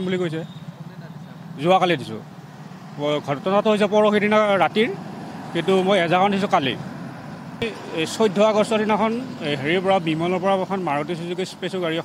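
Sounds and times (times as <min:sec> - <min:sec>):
man talking: 0:00.0 - 0:02.2, 0:03.0 - 0:06.8, 0:07.6 - 0:12.0
steady background noise: 0:01.5 - 0:12.0.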